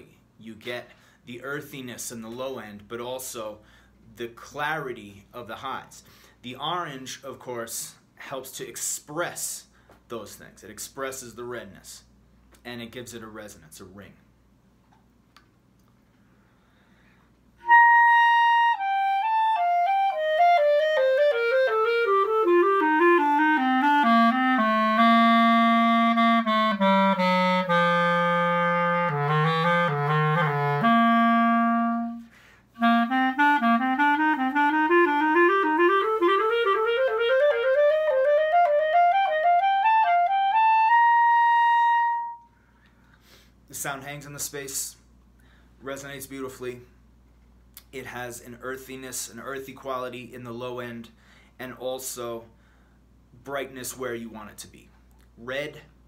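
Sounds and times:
clarinet playing a scale: 17.6s - 42.5s.

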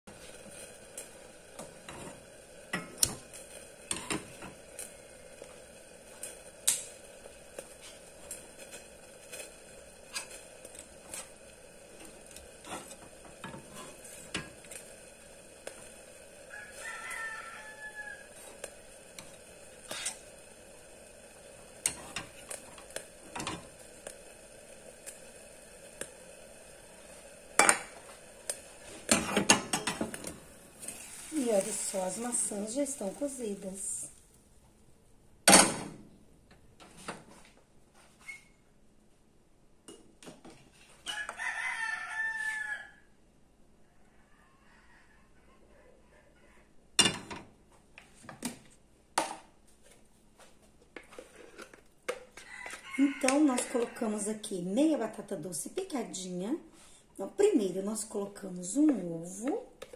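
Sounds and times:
frying pan and utensils clicking: 1.0s - 4.9s, 6.2s - 7.0s, 12.0s - 14.9s, 21.8s - 24.2s, 27.6s - 31.0s, 47.0s - 47.5s
rooster crowing: 16.4s - 18.5s, 41.0s - 43.2s, 43.8s - 46.8s, 52.4s - 54.4s.

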